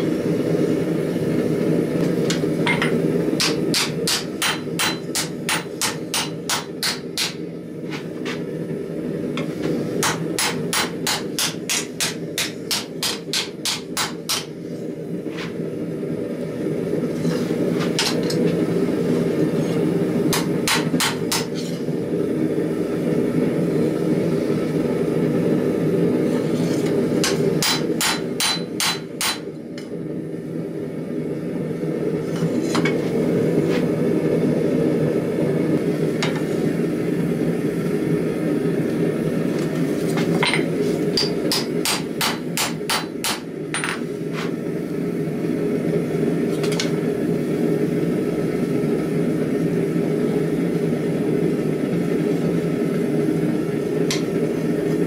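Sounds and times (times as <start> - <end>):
hammer striking steel on anvil: 2.3 - 7.4, 10.0 - 14.5, 20.3 - 21.7, 27.2 - 29.5, 40.4 - 44.0.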